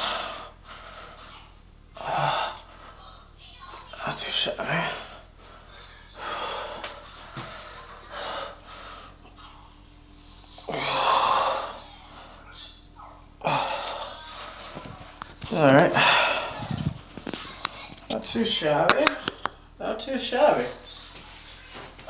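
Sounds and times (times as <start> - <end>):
man breathing forcefully: 0.0 - 1.2, 4.8 - 9.3, 15.9 - 17.0.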